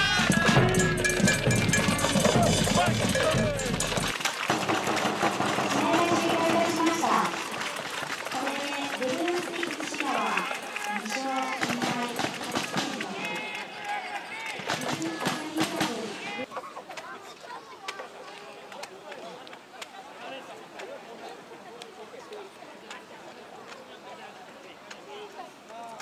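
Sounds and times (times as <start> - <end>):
people talking and calling out: 0.0 - 26.0.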